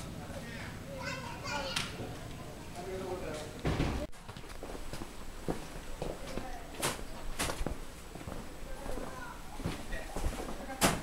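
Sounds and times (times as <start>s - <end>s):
low background noise: 0.0s - 11.0s
children chattering and calling: 0.1s - 4.1s, 8.4s - 11.0s.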